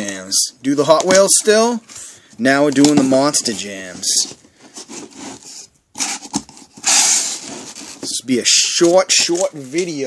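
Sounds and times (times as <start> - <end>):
blade scraping cardboard: 4.8 - 8.1.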